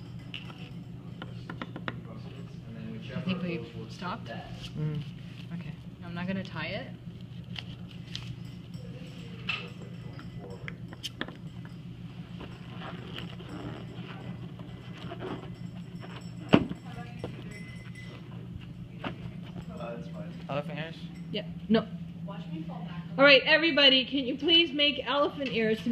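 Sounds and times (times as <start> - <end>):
steady low hum: 0.0 - 25.9
hands handling a balloon: 12.4 - 17.4.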